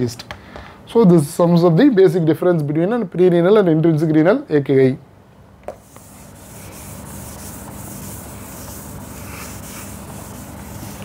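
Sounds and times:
eraser rubbing on whiteboard: 0:05.8 - 0:11.0.

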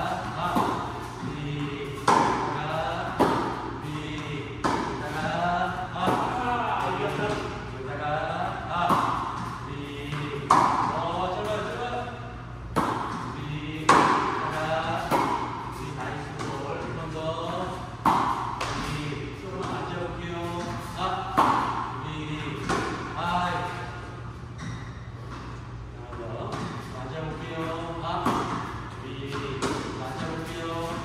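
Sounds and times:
tennis balls struck with rackets: 0:00.0 - 0:07.7, 0:08.4 - 0:25.5, 0:26.4 - 0:26.9, 0:27.5 - 0:31.0
man talking: 0:00.0 - 0:24.2, 0:25.9 - 0:31.0.

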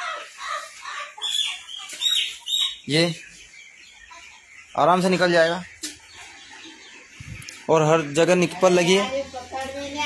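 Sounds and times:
chickens cheeping: 0:00.0 - 0:10.0.

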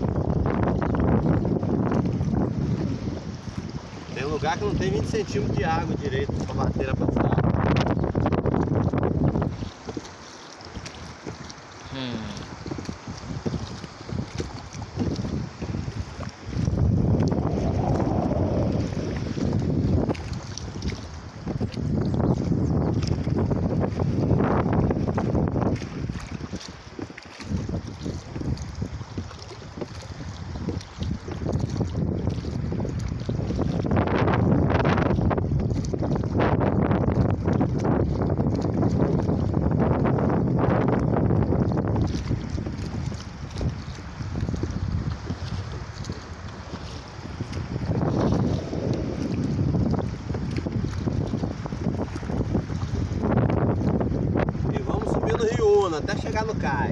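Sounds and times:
oars rowing through choppy water: 0:00.0 - 0:56.9
wind buffeting microphone: 0:00.0 - 0:56.9.

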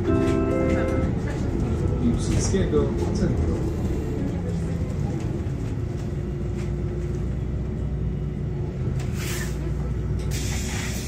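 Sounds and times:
bus engine droning: 0:00.0 - 0:11.0
compressed air hiss: 0:09.1 - 0:09.6, 0:10.3 - 0:11.0.

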